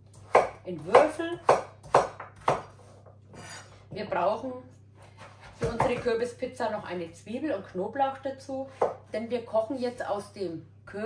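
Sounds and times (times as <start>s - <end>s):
knife chopping on wooden board: 0.2s - 3.0s, 5.0s - 6.2s.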